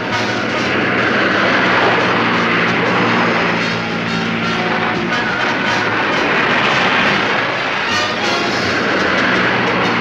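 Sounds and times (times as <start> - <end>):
sports car engines racing past: 0.0 - 10.0.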